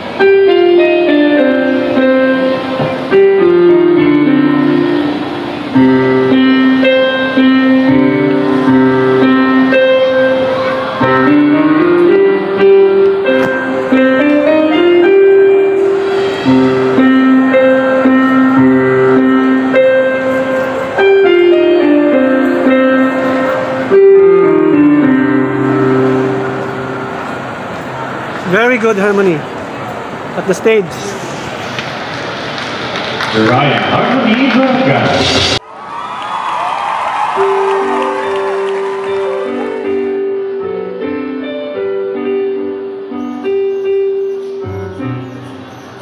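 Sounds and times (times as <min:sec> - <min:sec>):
electronic keyboard melody: 0:00.0 - 0:29.1, 0:37.4 - 0:46.0
hubbub of many people talking: 0:00.0 - 0:35.8.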